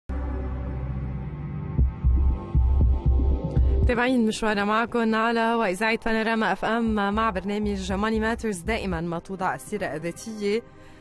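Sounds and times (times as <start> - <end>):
deep bass throbs: 0.1 - 4.2, 6.8 - 9.1.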